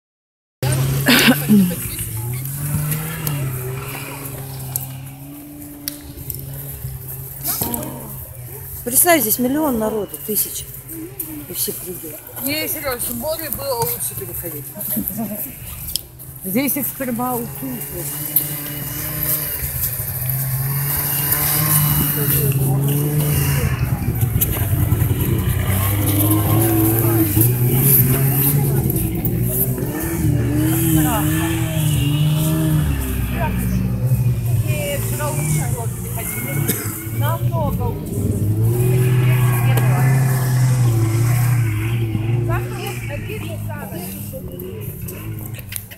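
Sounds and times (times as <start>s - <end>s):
faint voices: 0.6s - 45.9s
low drone changing pitch: 19.9s - 45.8s.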